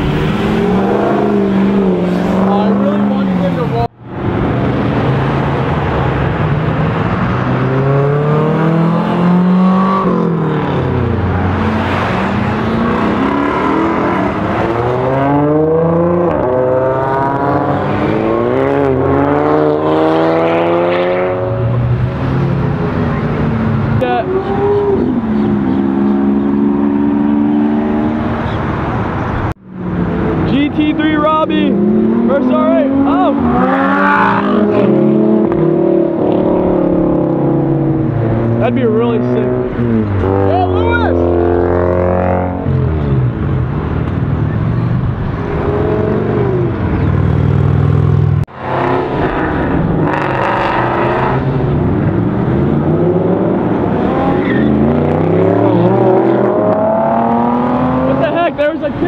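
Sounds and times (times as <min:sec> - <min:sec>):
sports cars accelerating hard: 0:00.0 - 0:59.0.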